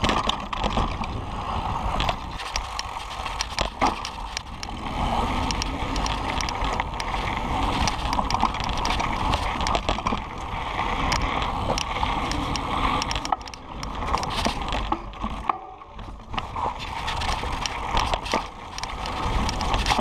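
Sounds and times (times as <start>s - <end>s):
bike clicking and rattling: 0.0s - 20.0s
bike tyres rumbling over stones: 0.0s - 20.0s.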